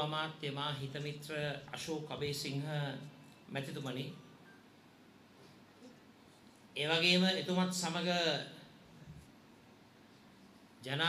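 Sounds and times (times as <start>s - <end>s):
man speaking: 0.0s - 4.2s, 6.8s - 8.7s.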